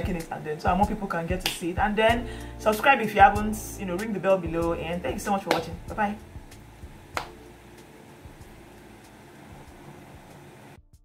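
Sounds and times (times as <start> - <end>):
faint room noise hiss: 0.0 - 10.8.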